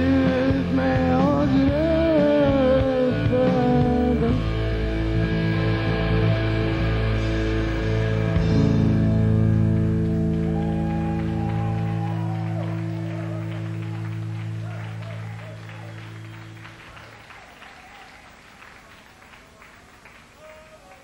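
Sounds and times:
rock band chord: 0:00.0 - 0:17.1
audience clapping and shouting: 0:09.4 - 0:21.0.

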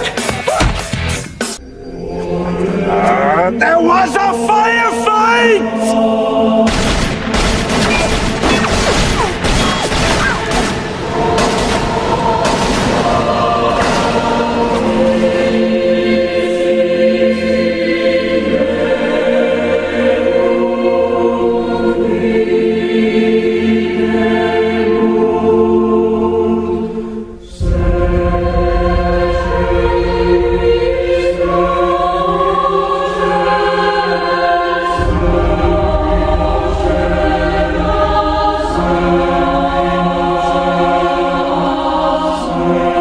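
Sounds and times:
choir singing sustained notes: 0:01.6 - 0:43.0
heavy deep bass: 0:35.0 - 0:40.4.

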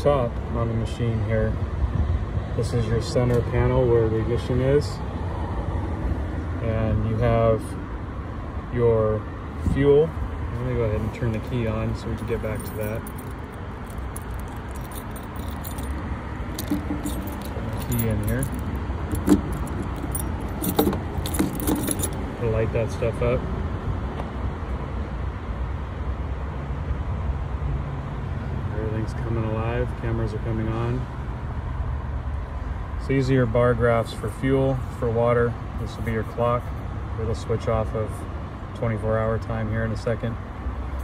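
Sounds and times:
low background noise: 0:08.7 - 0:23.4
keys jingling and clinking: 0:11.4 - 0:22.3.

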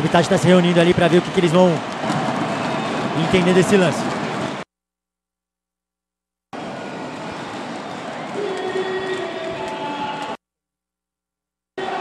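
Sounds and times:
arena crowd noise: 0:00.0 - 0:04.6, 0:06.6 - 0:10.4, 0:11.8 - 0:12.0.

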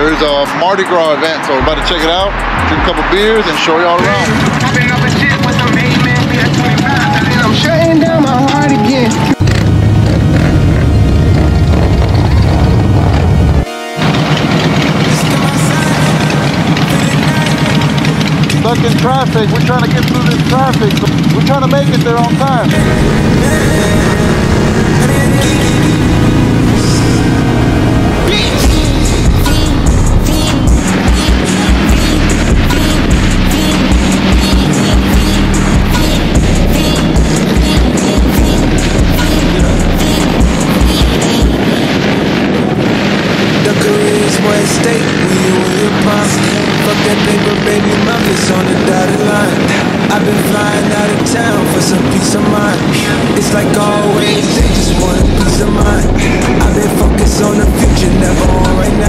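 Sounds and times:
background music with steady beat: 0:00.0 - 0:09.6, 0:22.7 - 0:42.1, 0:54.4 - 0:59.0
voice over music: 0:00.0 - 0:09.6, 0:13.5 - 0:59.0.

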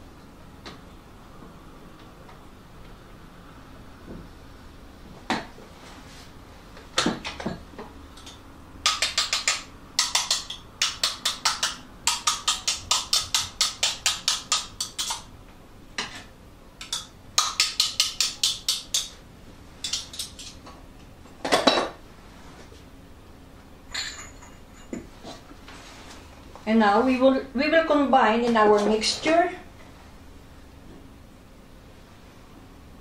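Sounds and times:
spatula tapping metal bowl: 0:16.8 - 0:19.1.

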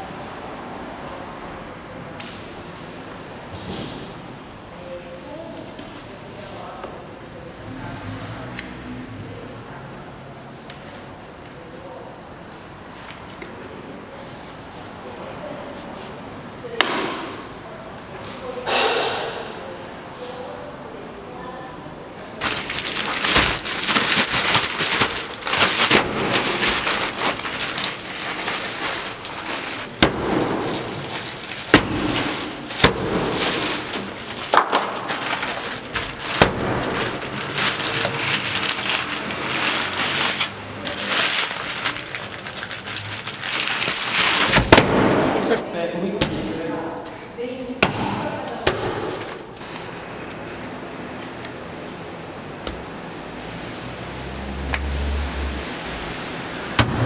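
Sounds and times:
bubble wrap crinkling: 0:22.4 - 0:45.6.

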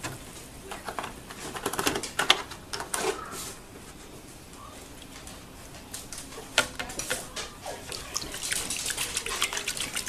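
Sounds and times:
wet sloshing of stirred milk: 0:06.8 - 0:10.0.

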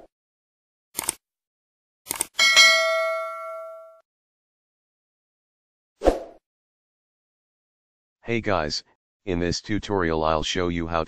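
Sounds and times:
bright bell ding: 0:02.4 - 0:04.0.

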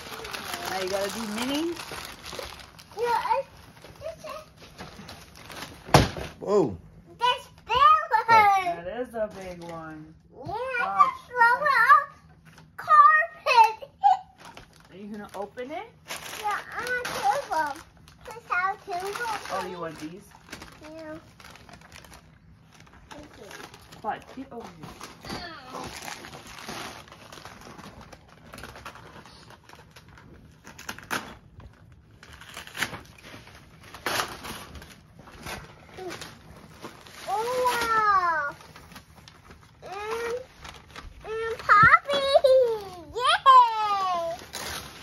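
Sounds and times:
wrapping paper crinkling and rustling: 0:00.0 - 0:06.6, 0:07.2 - 0:10.0, 0:10.6 - 0:45.0.

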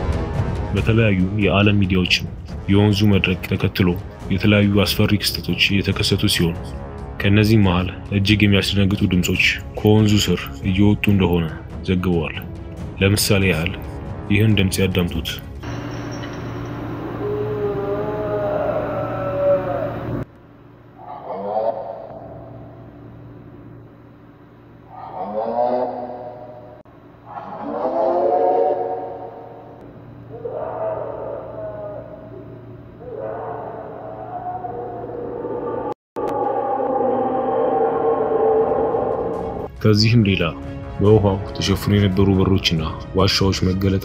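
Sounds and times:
low steady hum: 0:00.0 - 0:37.6
eerie wailing cries: 0:15.6 - 0:20.3, 0:20.9 - 0:23.1, 0:24.8 - 0:39.7.

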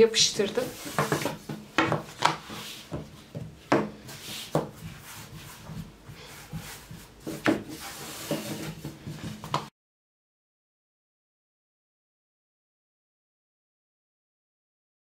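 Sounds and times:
rolling pin rubbing dough: 0:00.1 - 0:09.7
wooden rolling pin knocks: 0:00.8 - 0:05.0, 0:06.5 - 0:09.7.

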